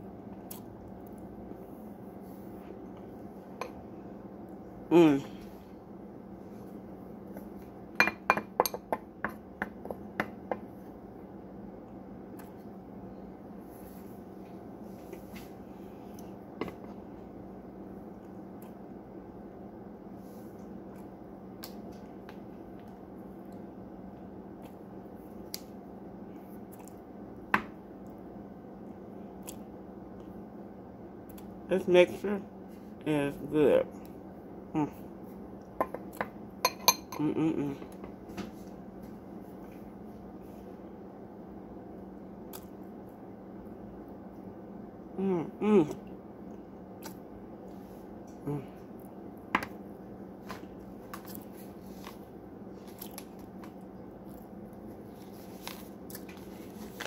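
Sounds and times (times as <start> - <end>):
steady low hum: 0.0 - 57.0
person chewing with crunches: 0.2 - 3.6, 24.4 - 28.2, 46.0 - 57.0
chewing cornstarch: 50.6 - 57.0.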